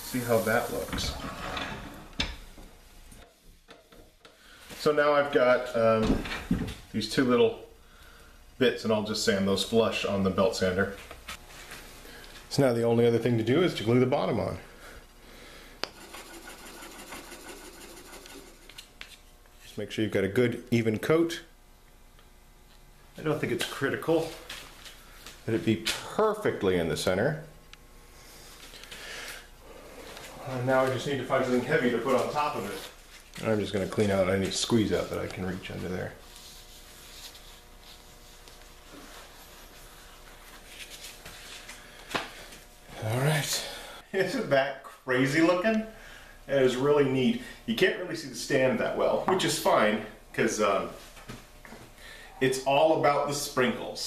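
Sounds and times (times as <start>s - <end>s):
steady low hum: 0.0s - 54.0s
paper towel rubbing: 16.0s - 18.9s, 34.4s - 41.7s.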